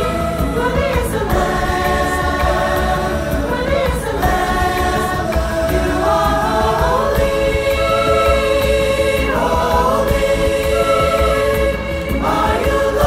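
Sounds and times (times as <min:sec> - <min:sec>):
choir singing a hymn: 0:00.0 - 0:13.0
piano accompaniment: 0:00.0 - 0:13.0.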